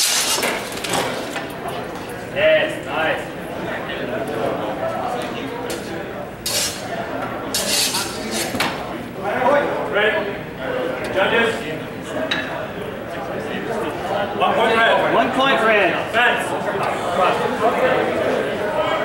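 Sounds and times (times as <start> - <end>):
background voices chattering: 0.0 - 19.0.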